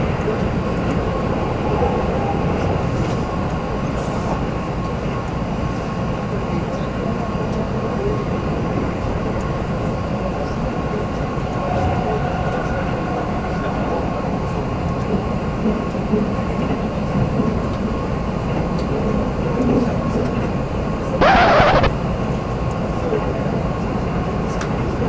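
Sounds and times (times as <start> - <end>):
faint steady whine: 21.2 - 21.9.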